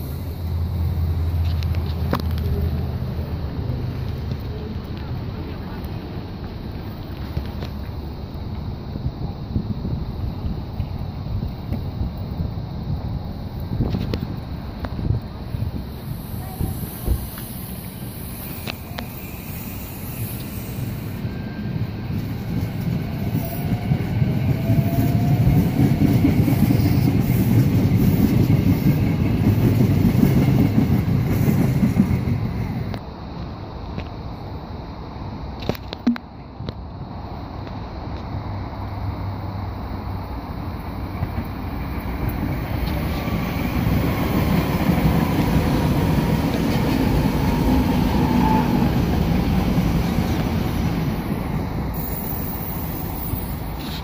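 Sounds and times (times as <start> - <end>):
electric train rumbling past: 0.0 - 54.0.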